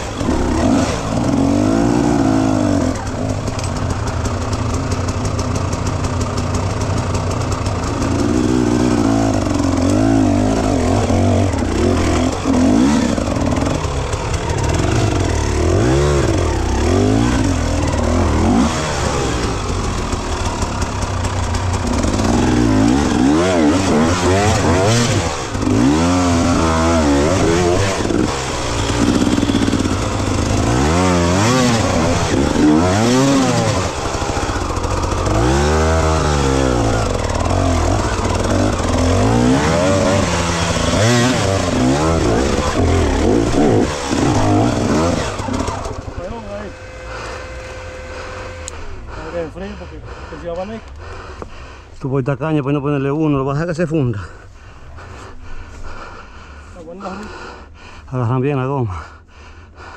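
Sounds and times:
dirt bike engine revving: 0.0s - 57.8s.

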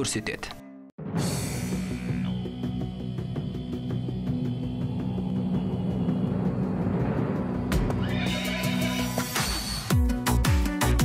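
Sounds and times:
background music: 0.0s - 11.0s
horse whinny: 8.0s - 9.4s.

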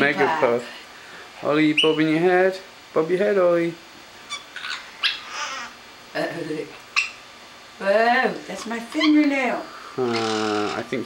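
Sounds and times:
parrot squawking: 1.7s - 2.2s, 4.2s - 5.8s, 6.9s - 7.2s, 8.9s - 9.3s, 10.0s - 10.8s.

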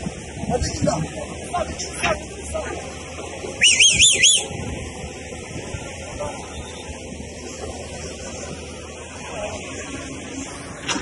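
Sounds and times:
faint outdoor background noise: 0.0s - 11.0s
bird whistling call: 3.6s - 4.5s.

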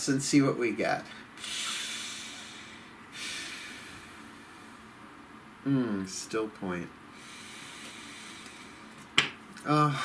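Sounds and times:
man breathing deeply: 1.4s - 4.9s, 7.1s - 9.0s.

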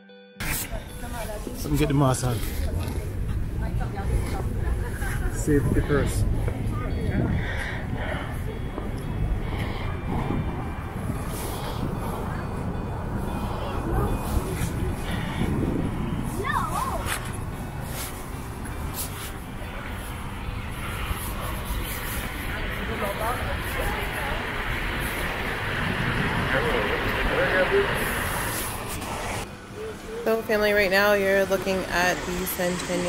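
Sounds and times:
distant traffic: 0.4s - 33.0s
faint voices: 0.5s - 33.0s
wind rumbling on microphone: 2.6s - 29.4s.

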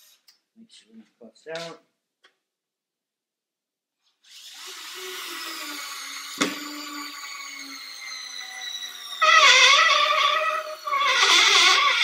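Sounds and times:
cordless screwdriver motor whine: 4.4s - 12.0s.

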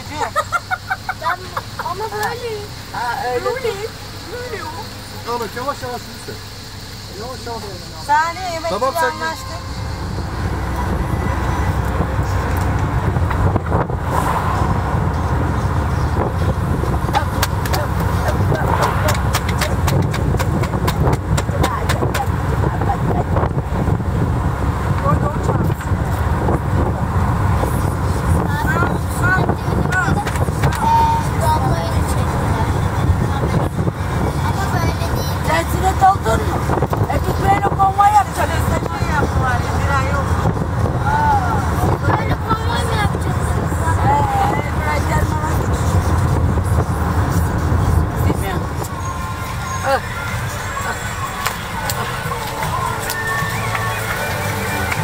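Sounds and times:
faint wavering voices: 0.0s - 13.2s, 25.1s - 55.0s
vehicle rumble: 0.0s - 55.0s
wind buffeting microphone: 9.8s - 55.0s.

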